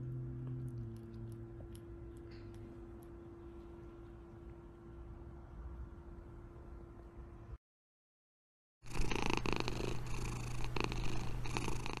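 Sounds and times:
cat purring: 0.0s - 4.4s, 8.9s - 12.0s.

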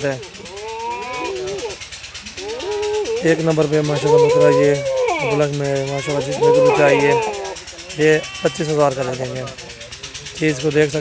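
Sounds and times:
goat bleating: 6.1s - 7.4s.

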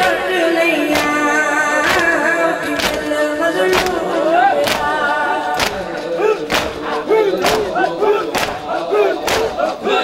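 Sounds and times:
men chanting: 0.0s - 10.0s
hands striking chests: 0.9s - 1.2s, 2.8s - 9.8s.

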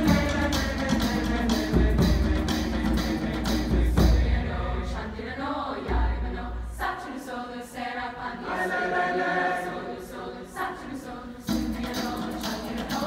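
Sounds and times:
mixed choir singing in harmony: 0.0s - 13.0s.

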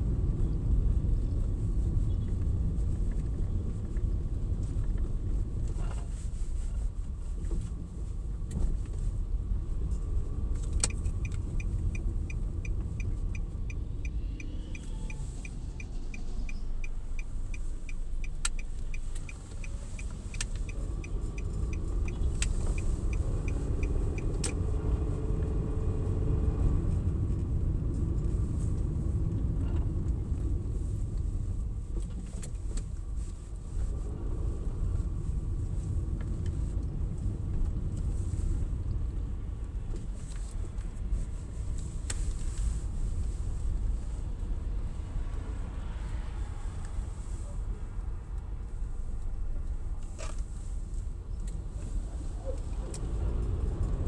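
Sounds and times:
car engine and tyres rumbling: 0.0s - 54.0s
turn signal ticking: 7.3s - 45.5s.

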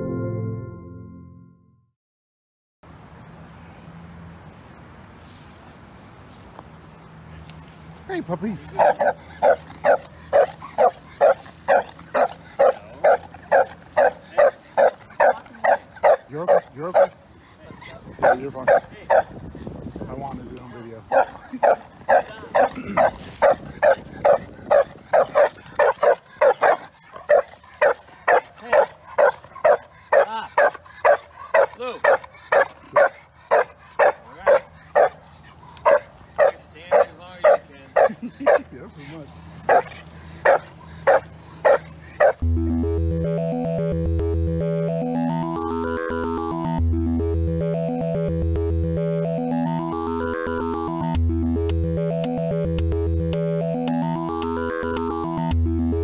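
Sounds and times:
dog barking: 8.8s - 19.3s, 21.1s - 38.7s, 39.6s - 42.4s.

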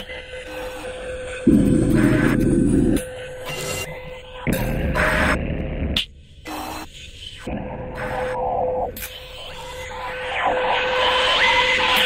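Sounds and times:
glitchy electronic music: 1.5s - 3.0s.

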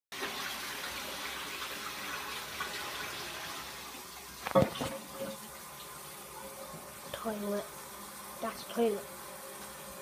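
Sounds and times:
water running steadily: 0.1s - 10.0s.

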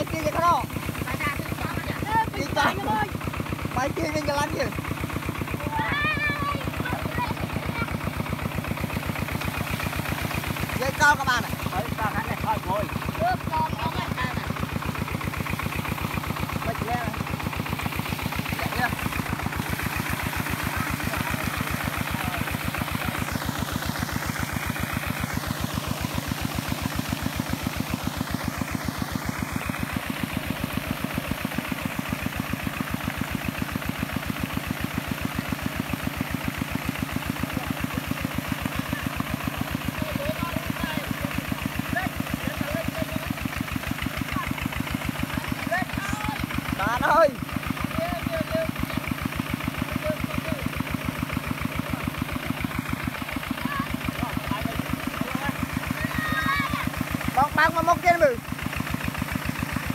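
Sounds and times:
diesel engine running: 0.0s - 59.9s
wheels churning in mud: 0.0s - 59.9s
loud shout: 56.0s - 56.9s.

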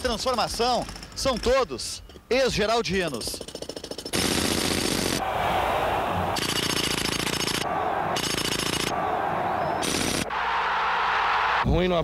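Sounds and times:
jackhammer breaking concrete: 3.3s - 5.2s.

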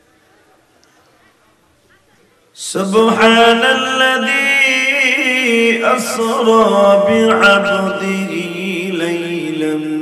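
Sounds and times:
man chanting melodically: 2.6s - 10.0s.

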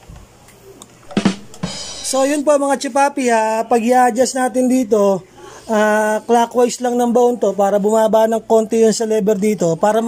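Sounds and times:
sharp drum hits: 1.0s - 2.3s.

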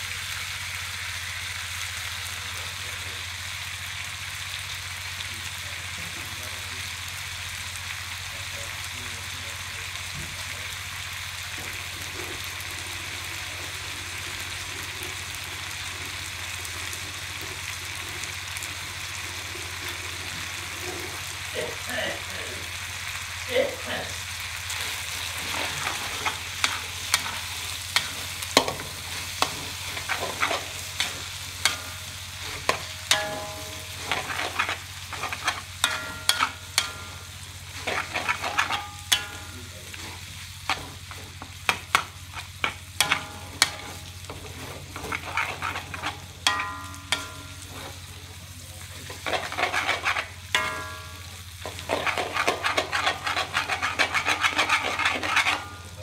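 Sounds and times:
food sizzling: 0.0s - 56.0s
metal spatula scraping wok: 23.9s - 56.0s.

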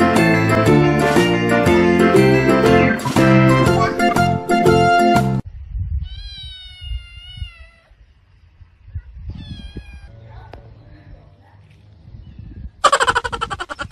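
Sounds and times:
music: 0.0s - 5.4s
cat meowing: 6.0s - 8.0s, 9.3s - 10.2s.

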